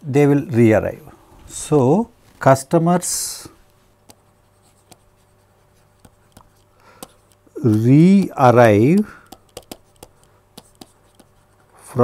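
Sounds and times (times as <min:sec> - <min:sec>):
faint low hum: 0:00.0 - 0:12.0
stylus scratching on tablet: 0:03.9 - 0:12.0.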